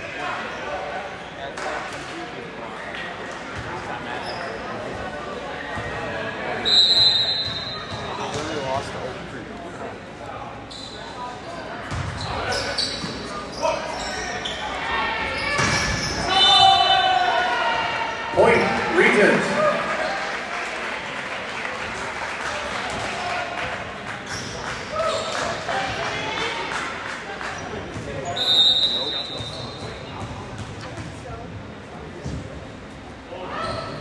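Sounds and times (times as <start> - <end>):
referee's whistle blast: 6.6 - 7.9, 28.3 - 29.7
players and spectators shouting: 13.7 - 20.2.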